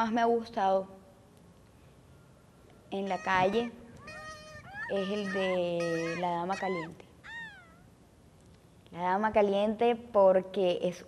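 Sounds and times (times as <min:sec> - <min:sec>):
cat meowing: 0:03.1 - 0:07.9.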